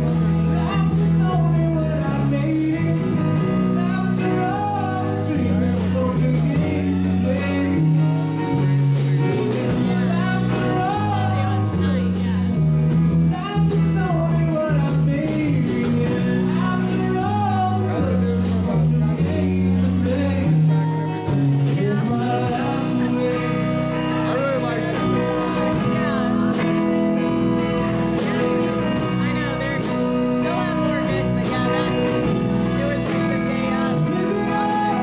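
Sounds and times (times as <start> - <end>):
bass guitar: 0.0 - 35.0
drum kit: 0.0 - 35.0
electric guitars: 0.0 - 35.0
man singing: 0.0 - 35.0.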